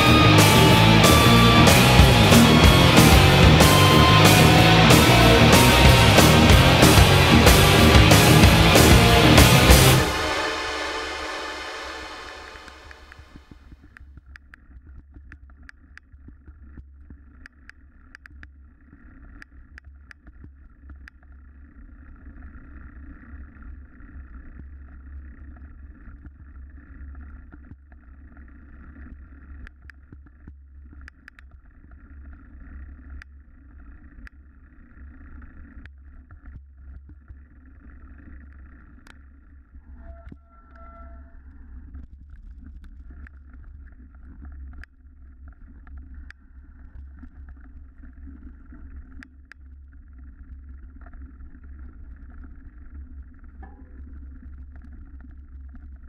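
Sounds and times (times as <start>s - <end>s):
vehicle engine drone: 0.0s - 13.6s.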